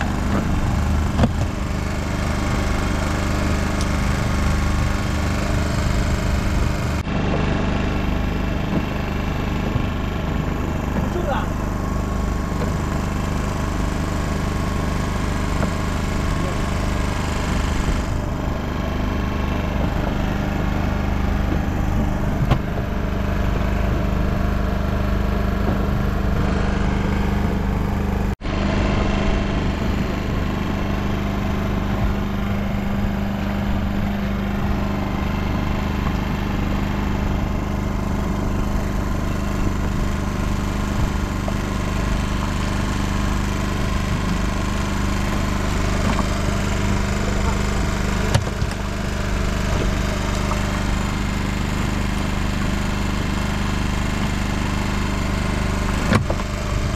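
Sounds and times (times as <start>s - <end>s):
boat engine humming: 0.0s - 56.9s.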